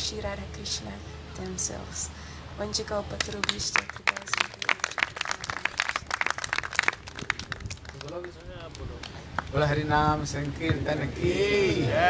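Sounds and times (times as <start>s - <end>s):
people clapping hands: 3.2s - 9.7s.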